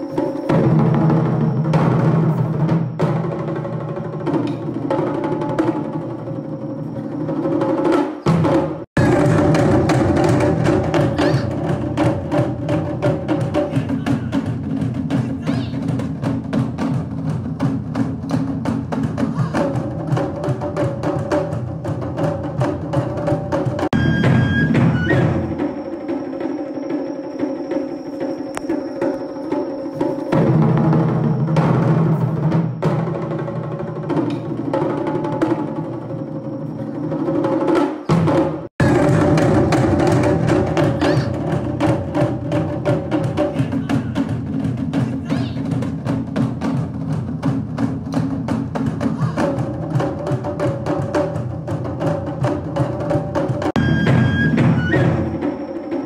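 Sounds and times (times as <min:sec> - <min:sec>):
taiko drum ensemble playing: 0:00.0 - 0:56.0.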